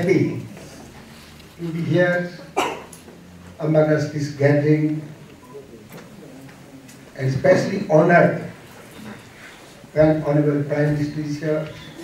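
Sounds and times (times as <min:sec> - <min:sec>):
man speaking: 0:00.0 - 0:00.5, 0:01.6 - 0:02.6, 0:03.6 - 0:06.0, 0:07.1 - 0:08.6, 0:09.9 - 0:12.0.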